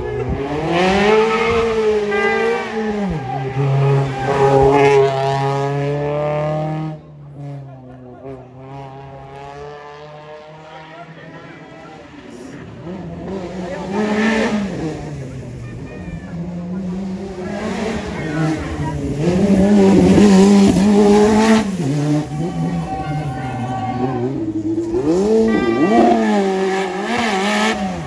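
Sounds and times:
rally car engines revving: 0.0 - 28.0.

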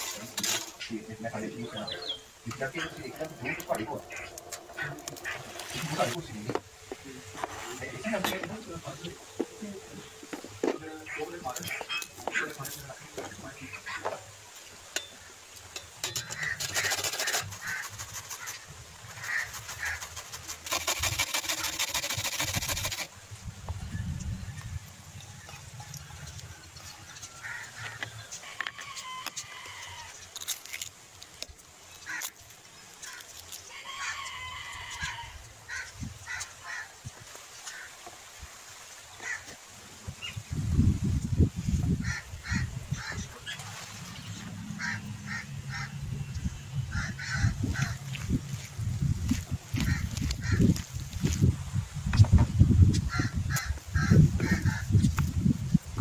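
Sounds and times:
peafowl honking calls: 0.7 - 6.1, 10.9 - 12.6, 16.0 - 23.1, 44.3 - 46.0, 46.8 - 48.2, 53.0 - 54.9
fast rattling: 16.0 - 18.5, 19.4 - 23.1.

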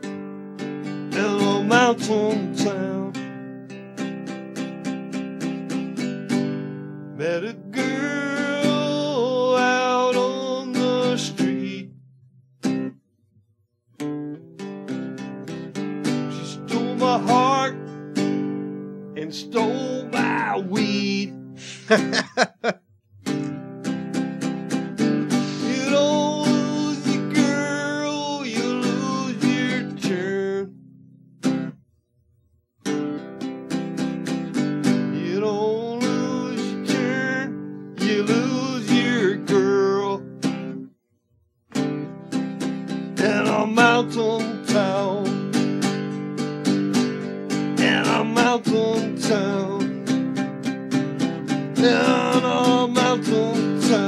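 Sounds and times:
strummed acoustic guitar: 0.0 - 13.0, 13.8 - 22.6, 23.2 - 31.8, 32.8 - 40.9, 41.7 - 54.0
man singing: 1.1 - 3.3, 7.2 - 12.0, 16.1 - 17.9, 19.2 - 22.7, 25.3 - 30.8, 35.0 - 40.8, 43.1 - 45.6, 47.8 - 50.2, 51.5 - 54.0.

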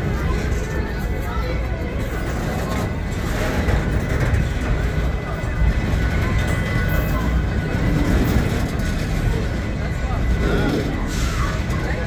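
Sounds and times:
freight train wheels clattering: 0.0 - 12.0.

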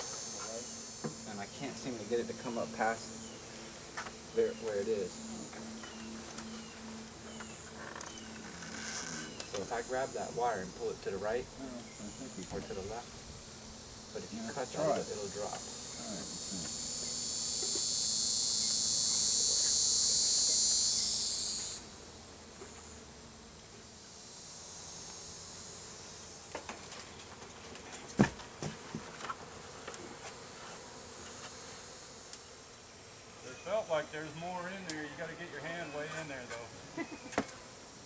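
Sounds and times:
high insect buzzing: 0.0 - 38.0
voices: 0.4 - 13.2, 14.1 - 17.8, 33.4 - 37.5.

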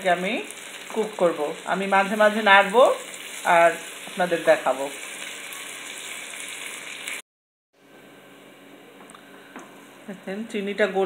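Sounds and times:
olives sizzling in oil: 0.0 - 7.2.

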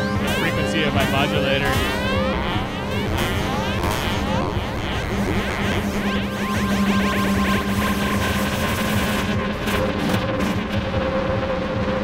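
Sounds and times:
dense electronic texture: 0.0 - 12.0
steady drone tones: 0.0 - 12.0.

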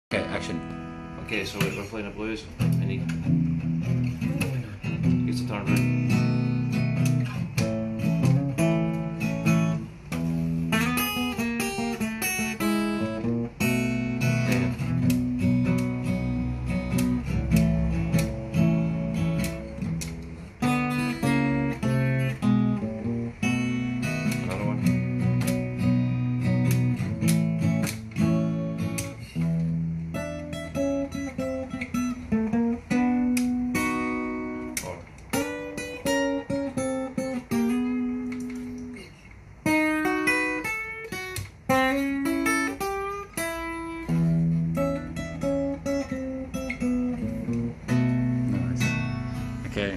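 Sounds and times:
acoustic guitar blues: 0.1 - 49.9.

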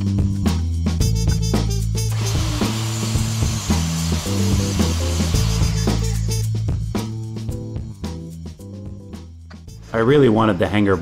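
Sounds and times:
background music: 0.0 - 11.0
table saw cutting wood: 2.1 - 6.4.

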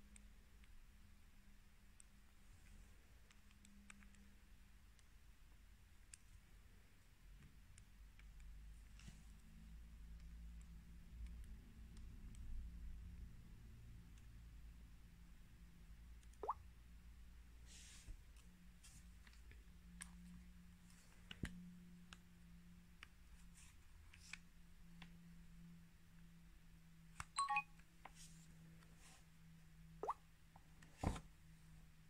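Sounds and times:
phone electronic chime: 27.4 - 27.6.

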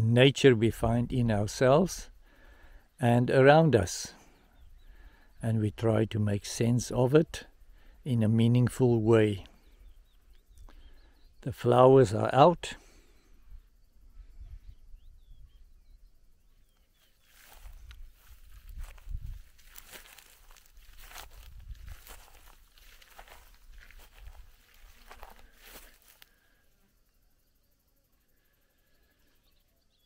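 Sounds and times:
footsteps in dry grass: 16.8 - 26.6
low microphone rumbles: 17.5 - 25.6.

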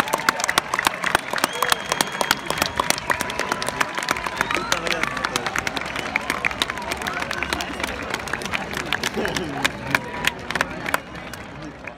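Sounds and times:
crowd clapping: 0.0 - 11.9.

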